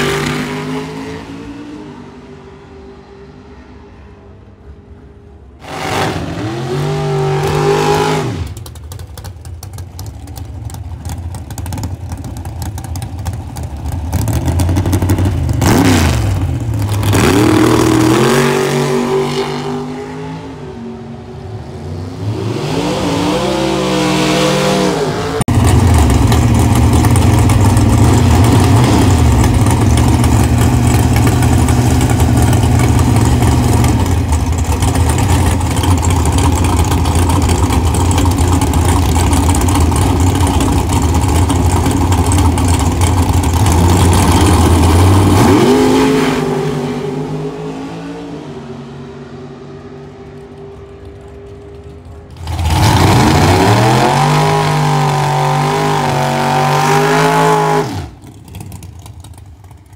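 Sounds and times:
race car engines revving: 0.0 - 59.9
race engine idling: 8.5 - 15.6, 25.5 - 45.3.

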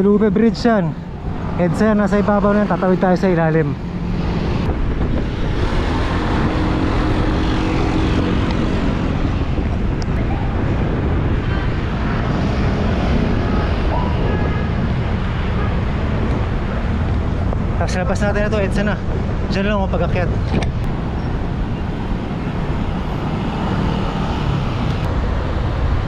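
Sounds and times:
road traffic: 0.0 - 26.0
wind rushing on microphone: 0.0 - 26.0.

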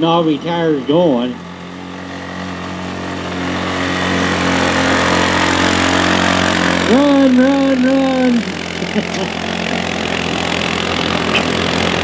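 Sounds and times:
atv engine running under load: 0.0 - 12.0.

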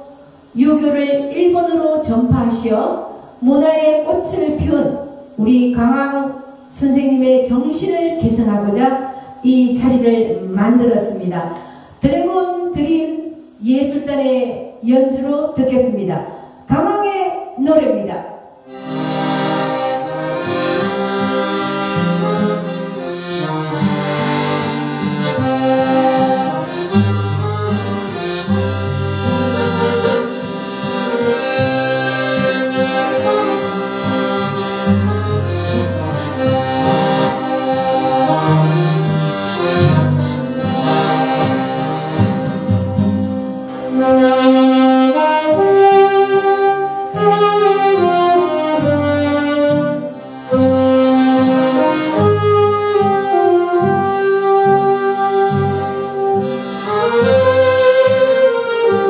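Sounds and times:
accordion: 0.0 - 14.2, 18.6 - 59.0
acoustic guitar: 0.0 - 16.8, 18.5 - 59.0
saxophones playing melody: 18.6 - 59.0.

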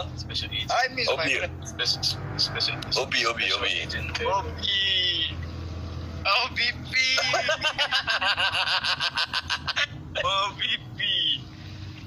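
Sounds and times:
man laughing hard: 7.2 - 10.3.

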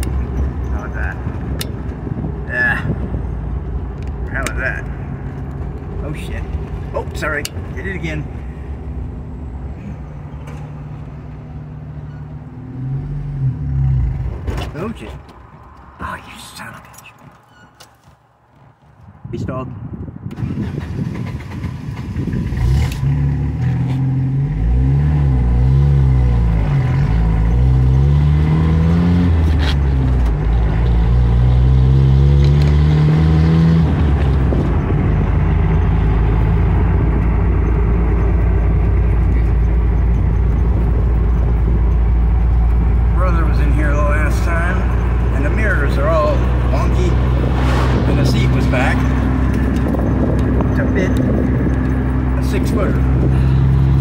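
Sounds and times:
car engine accelerating: 20.3 - 54.0.

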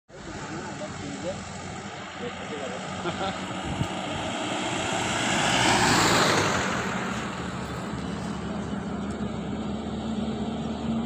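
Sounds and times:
highway traffic noise: 0.1 - 11.0
low engine drone: 0.1 - 11.0.

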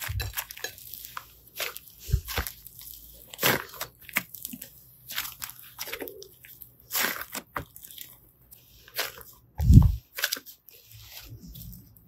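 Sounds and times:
deep slime squelch: 0.0 - 12.0
slime squishing and crackling: 0.0 - 12.0.

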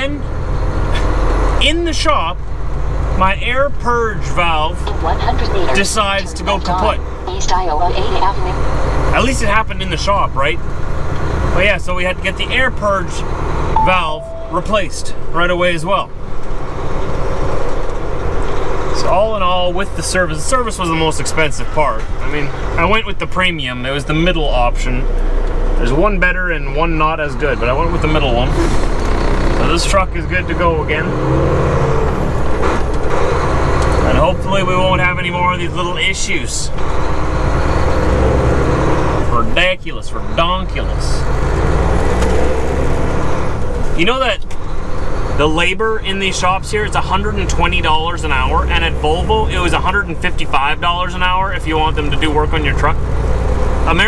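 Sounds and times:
road noise: 0.0 - 54.0
truck diesel engine drone: 0.0 - 54.0.

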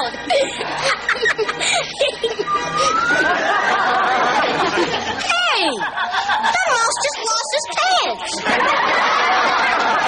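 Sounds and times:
snickering laughter: 0.2 - 5.2.

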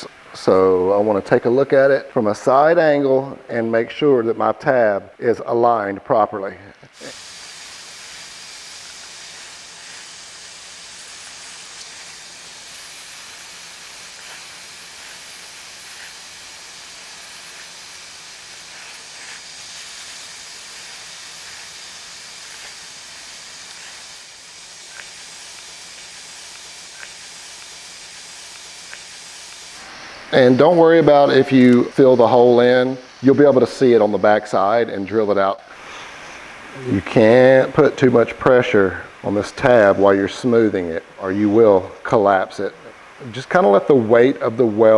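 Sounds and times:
plastic welder hissing: 6.1 - 44.9.

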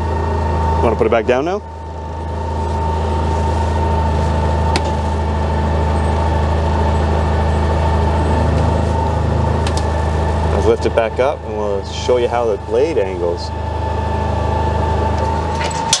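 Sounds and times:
electric lift lowering plow: 0.0 - 16.0
utility vehicle engine idling: 0.0 - 16.0.

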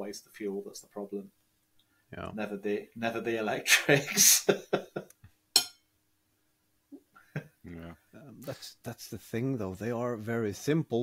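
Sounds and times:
faint steady hum: 0.0 - 11.0
person laughing: 3.7 - 5.1.

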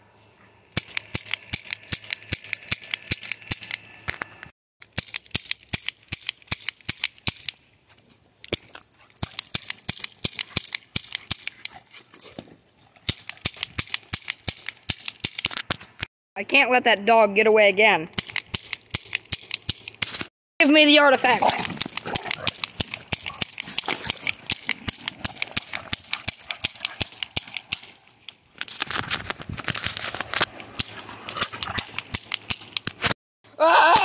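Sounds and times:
toy cap gun cracks: 0.8 - 7.6, 18.1 - 20.2.

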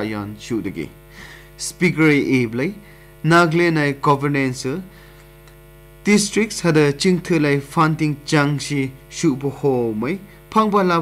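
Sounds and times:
newsreader speaking: 0.0 - 1.0, 1.6 - 4.9, 6.1 - 11.0
steady hum: 0.0 - 11.0.

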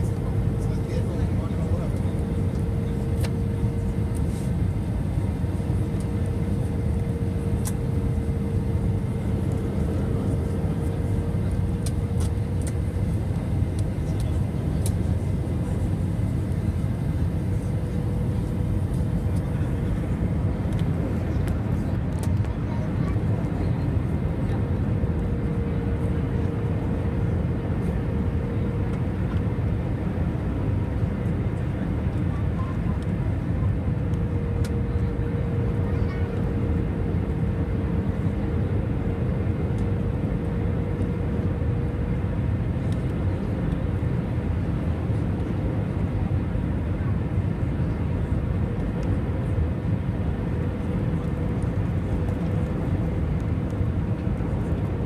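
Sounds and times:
jet engines rumbling in cabin: 0.0 - 55.0.

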